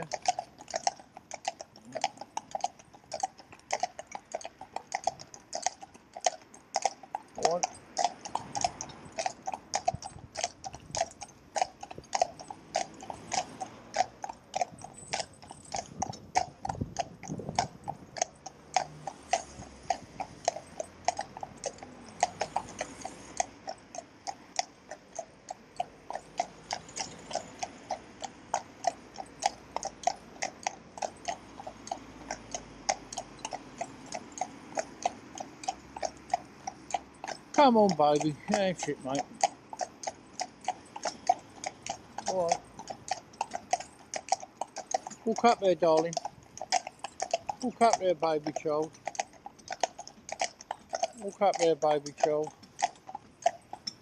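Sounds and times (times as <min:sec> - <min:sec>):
horse hooves clip-clopping on road: 0:00.0 - 0:54.0.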